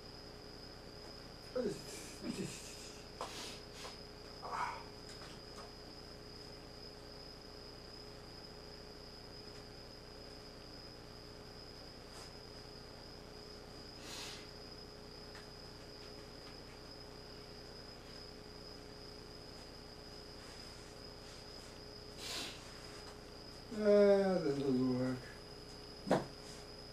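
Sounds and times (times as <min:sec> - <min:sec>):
faint hiss: 0:01.6 - 0:05.0, 0:13.9 - 0:14.7, 0:20.3 - 0:25.4
soft rustle: 0:19.4 - 0:23.7.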